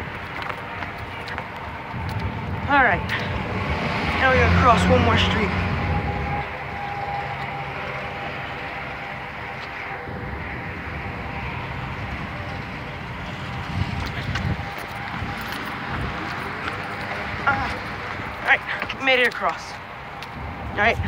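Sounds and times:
road traffic hum: 0:00.0 - 0:21.0.

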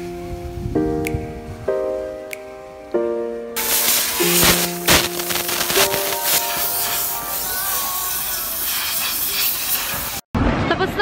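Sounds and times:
compressed air hissing: 0:03.6 - 0:10.3.

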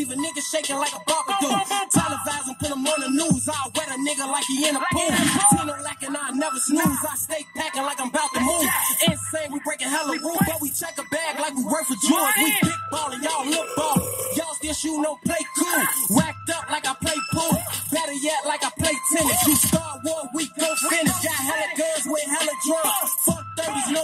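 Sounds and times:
rapping over a beat: 0:00.0 - 0:24.0.

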